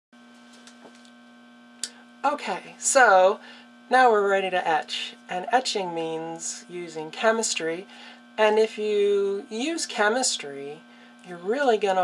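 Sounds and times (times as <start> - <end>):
low electrical hum: 0.2 - 12.0.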